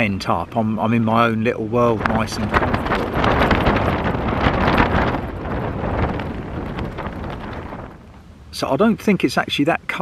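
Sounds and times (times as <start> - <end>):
wind buffeting tent fabric: 0.0 - 10.0.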